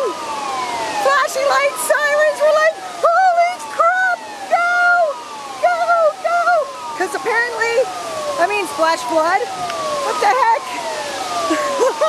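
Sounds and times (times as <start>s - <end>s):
warning siren falling wail: 0.0s - 12.0s.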